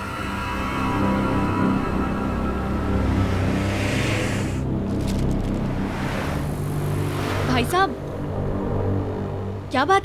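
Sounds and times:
low steady drone: 0.0s - 9.8s.

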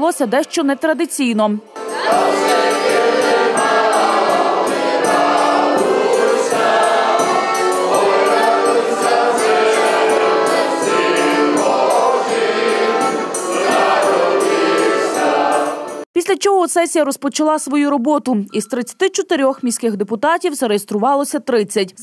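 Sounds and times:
frame drum beat: 1.8s - 15.6s
button accordion: 1.8s - 16.0s
group singing in chorus: 1.8s - 16.0s.

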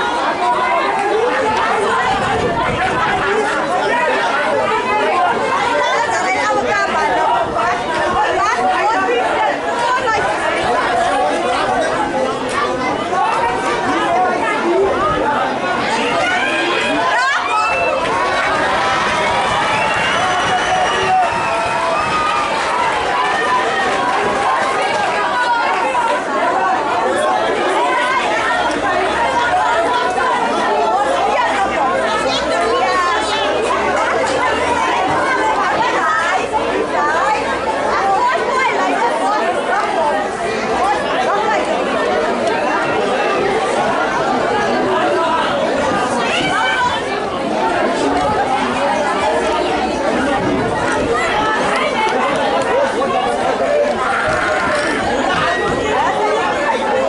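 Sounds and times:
chatter of many spectators: 0.0s - 57.0s.

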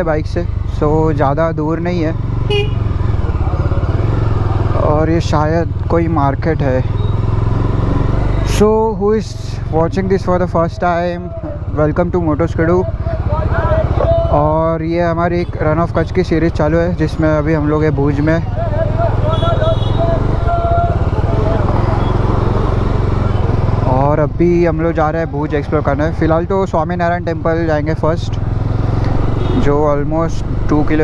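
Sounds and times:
motorcycle engine running: 0.0s - 31.0s.

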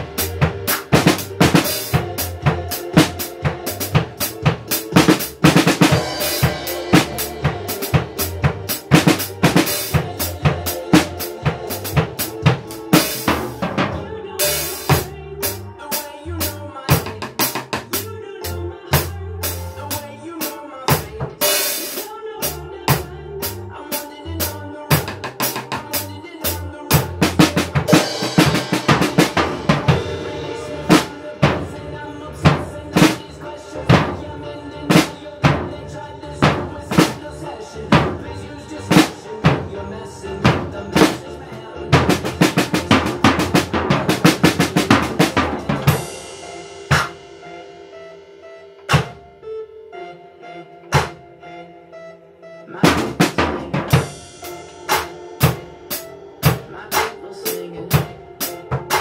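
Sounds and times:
drum kit groove: 0.0s - 49.7s, 50.8s - 51.2s, 52.8s - 59.0s
backing track music: 0.0s - 59.0s.

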